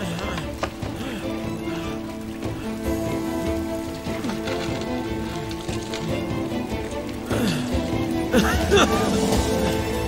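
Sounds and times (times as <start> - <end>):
dramatic orchestral score: 0.0 - 10.0
fire crackling and hissing: 0.0 - 10.0.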